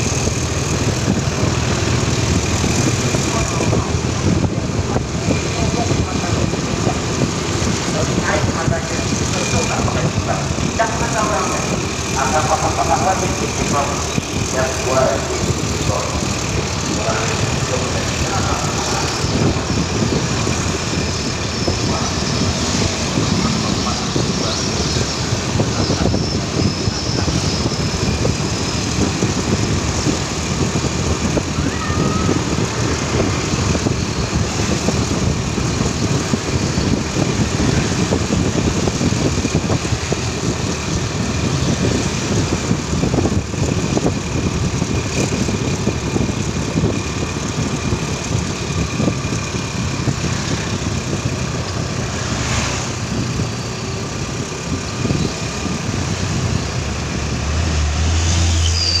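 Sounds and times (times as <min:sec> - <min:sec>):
wind buffeting microphone: 0:00.0 - 0:58.2
passing traffic: 0:00.0 - 0:59.0
vehicle engine running: 0:00.0 - 0:59.0.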